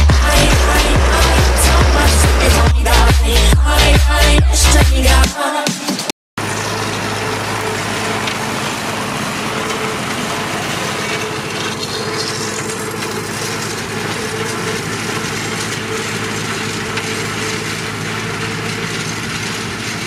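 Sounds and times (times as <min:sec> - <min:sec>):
tractor diesel engine under load: 0:00.0 - 0:05.3, 0:06.4 - 0:20.0.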